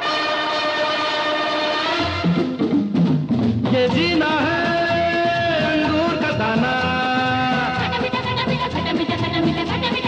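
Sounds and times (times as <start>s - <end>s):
loud horn-like chord: 0.0s - 2.5s.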